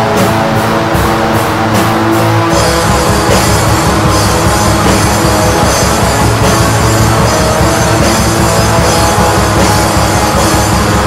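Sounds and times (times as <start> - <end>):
distorted electric guitars: 0.0 - 11.0
fast driving drums: 0.0 - 11.0.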